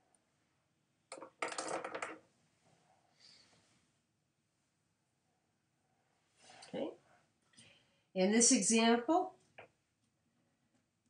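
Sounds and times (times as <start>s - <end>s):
small object clattering on hard surface: 1.1s - 2.2s.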